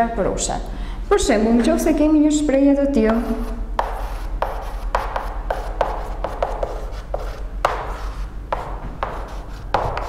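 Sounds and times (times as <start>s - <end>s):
steady low hum: 0.0s - 10.0s
chalk tapping and scraping on blackboard: 3.0s - 10.0s.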